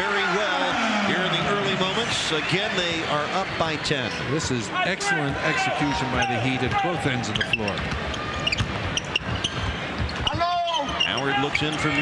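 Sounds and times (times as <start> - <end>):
murmur of arena crowd: 0.0 - 12.0
sneakers squeaking: 7.3 - 11.9.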